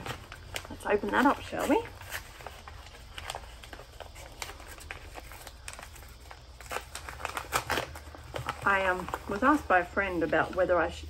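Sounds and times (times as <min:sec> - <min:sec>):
parcel packaging crinkling: 0:00.0 - 0:11.0.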